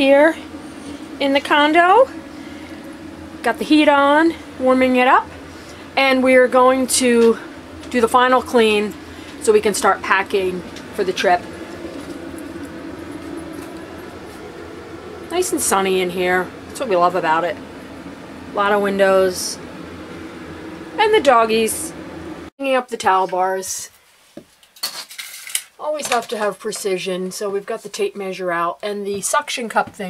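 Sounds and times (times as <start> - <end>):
furnace blower humming: 0.0 - 23.8.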